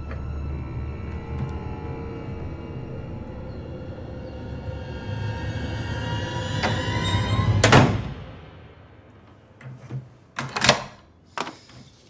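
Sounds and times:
eerie held orchestral chord: 0:00.0 - 0:09.5.

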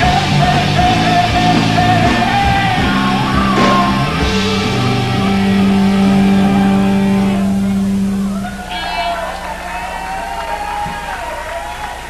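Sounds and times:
rock band distorted chord: 0:00.0 - 0:11.8.

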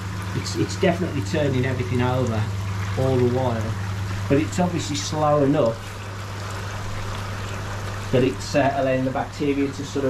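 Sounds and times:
steady low hum: 0:00.0 - 0:10.0
water bubbling and churning: 0:00.0 - 0:10.0.

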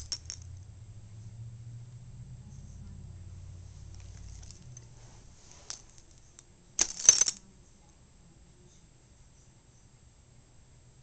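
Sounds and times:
dog collar tags jingling: 0:00.0 - 0:00.5, 0:05.6 - 0:07.4.

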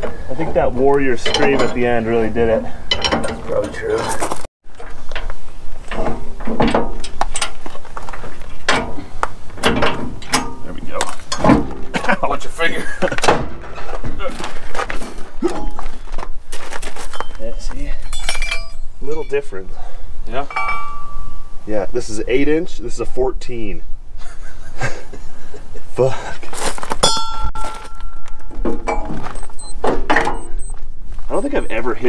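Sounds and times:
metal parts clanking: 0:01.1 - 0:02.0, 0:02.8 - 0:04.5, 0:09.6 - 0:11.9, 0:18.0 - 0:19.4.

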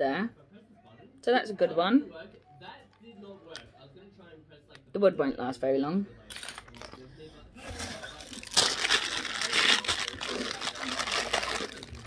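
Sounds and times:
plastic bag crinkling: 0:07.8 - 0:12.0.

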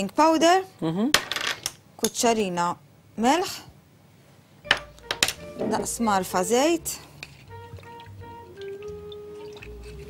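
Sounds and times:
person talking: 0:05.6 - 0:07.0.

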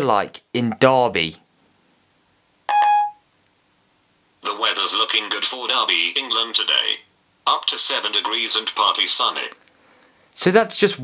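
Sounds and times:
two-note electronic beep: 0:02.7 - 0:03.2.

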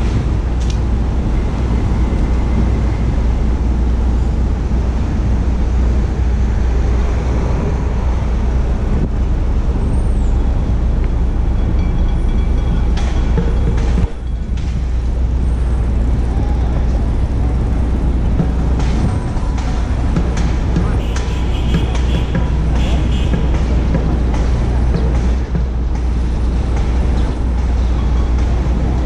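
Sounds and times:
street traffic rumble: 0:00.0 - 0:29.0.

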